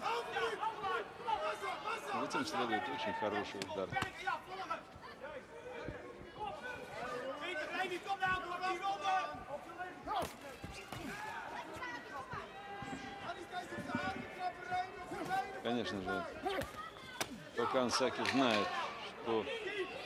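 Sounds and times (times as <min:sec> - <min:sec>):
crowd shouting: 0:00.0 - 0:20.0.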